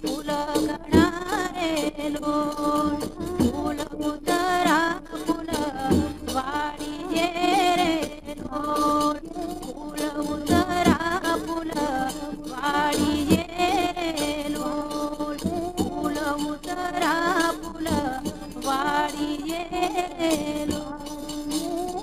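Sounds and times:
percussion strokes: 0:00.0 - 0:22.0
woman singing: 0:00.0 - 0:22.0.

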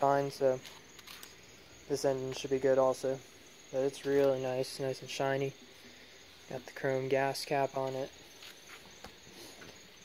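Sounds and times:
faint cicadas chorus: 0:00.0 - 0:10.0.

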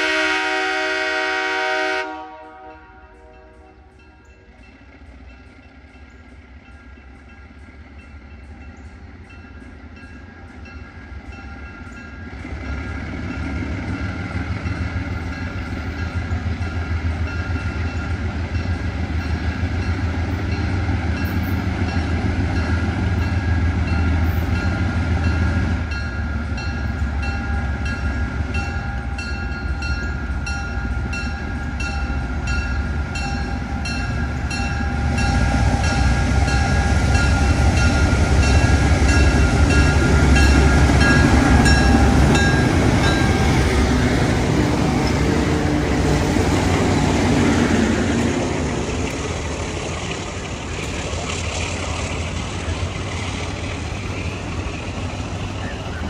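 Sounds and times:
diesel locomotive engine rumble: 0:00.0 - 0:56.0.

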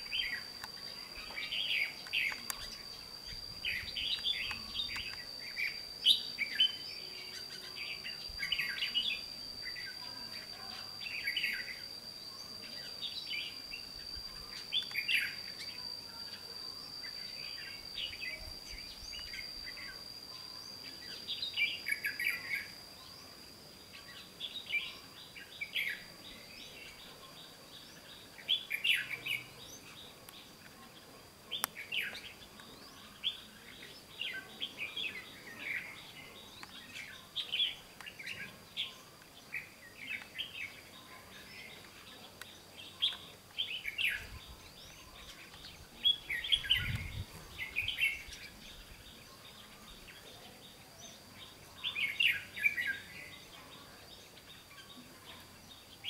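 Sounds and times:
steady thin high tone: 0:00.0 - 0:27.4
birds singing: 0:00.0 - 0:56.0.

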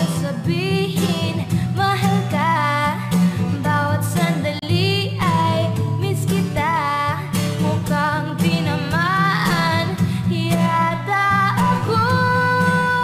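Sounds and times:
woman singing pop love song: 0:00.0 - 0:13.0.

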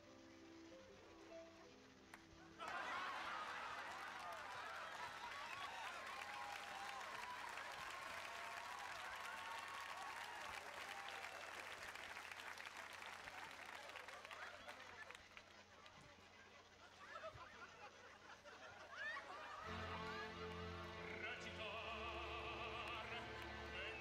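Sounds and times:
audience applauding: 0:02.6 - 0:16.0, 0:19.6 - 0:24.0.

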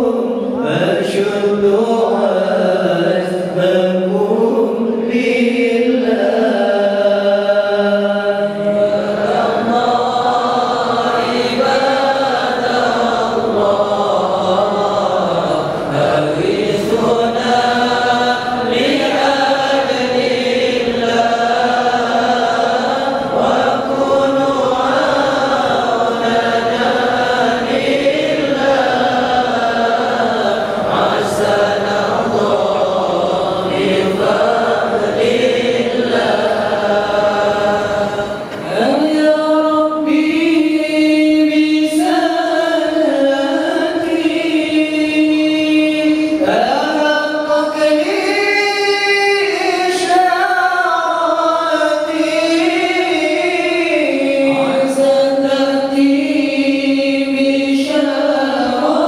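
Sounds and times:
men chanting together: 0:00.0 - 0:59.0.

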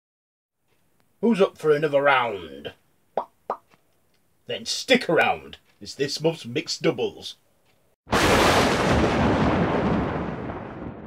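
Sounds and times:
rumbling boom: 0:08.1 - 0:11.0.

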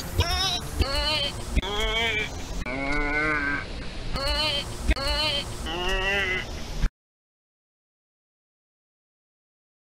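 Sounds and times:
young person crying out: 0:04.2 - 0:06.5.

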